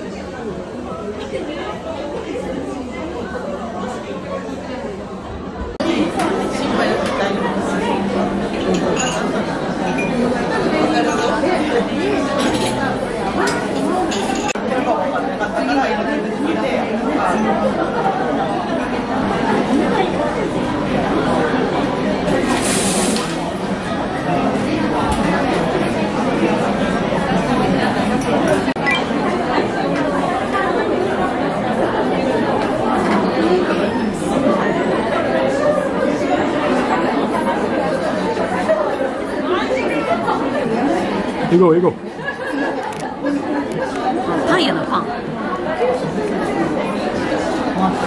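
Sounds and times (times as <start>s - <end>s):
babble of many conversations: 0.0s - 48.0s.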